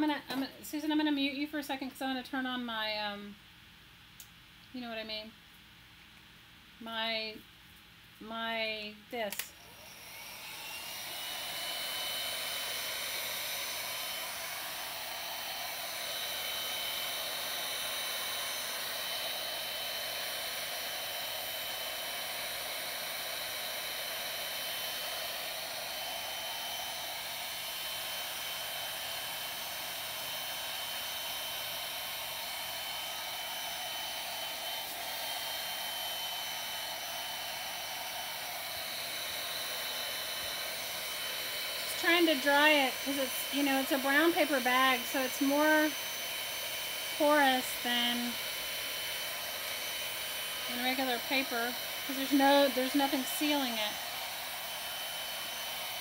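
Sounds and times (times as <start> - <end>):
heat gun blowing with high whine: 8.4 - 56.0.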